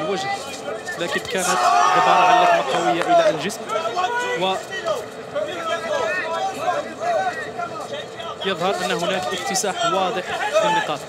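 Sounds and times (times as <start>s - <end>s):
crowd voices calling out: 0.0s - 11.0s.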